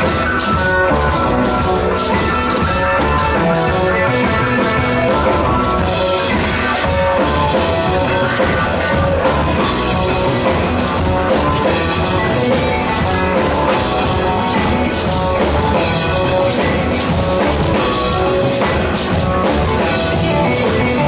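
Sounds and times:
drum kit beat: 0.0 - 21.0
electric guitar: 0.0 - 21.0.

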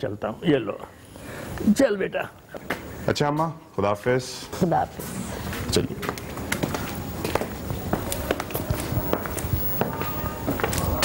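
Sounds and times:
footsteps of people walking: 2.5 - 11.0.

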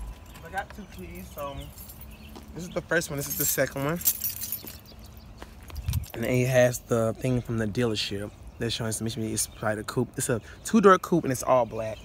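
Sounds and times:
car keys jingling: 0.0 - 6.4.

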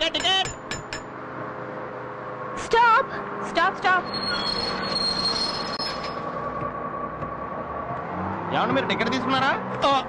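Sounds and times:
road rumble: 0.0 - 10.0
bus brakes squealing: 4.0 - 6.3.

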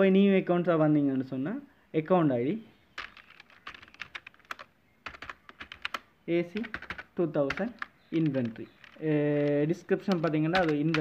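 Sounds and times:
computer keyboard typing: 3.0 - 11.0.

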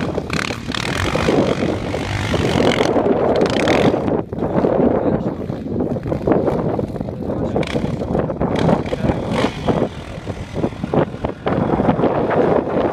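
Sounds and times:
quad bike engine running: 0.0 - 12.9
wind buffeting microphone: 0.0 - 12.9.

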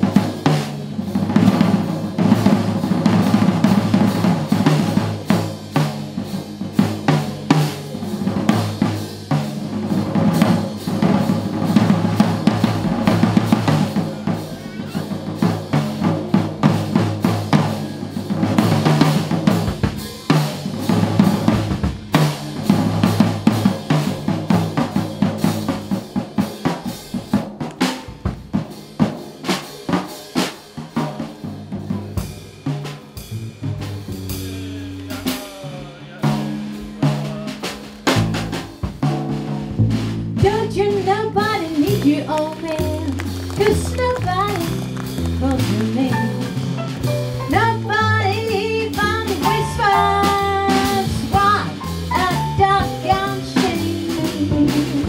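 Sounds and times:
double bass notes: 0.0 - 26.2, 31.5 - 55.0
drum kit solo: 0.0 - 55.0.

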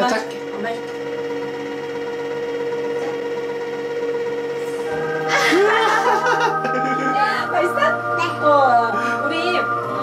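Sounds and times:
motor humming: 0.0 - 10.0.

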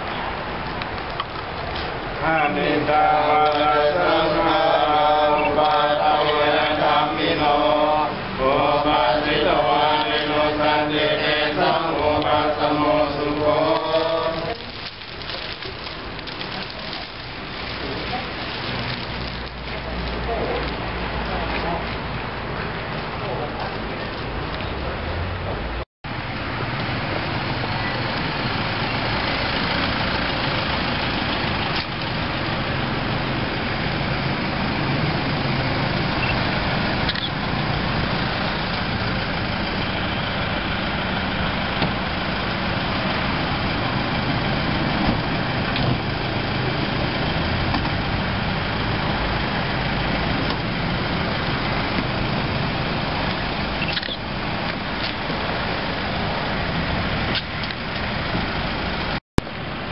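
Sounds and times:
vehicle engines idling: 0.0 - 59.9.

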